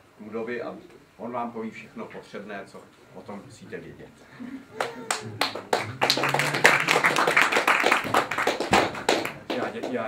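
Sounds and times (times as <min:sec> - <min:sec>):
audience applauding: 0:04.8 - 0:10.0.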